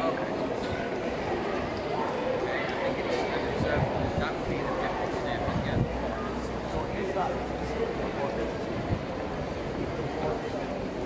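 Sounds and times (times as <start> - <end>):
busy pedestrian street noise: 0.0 - 11.0.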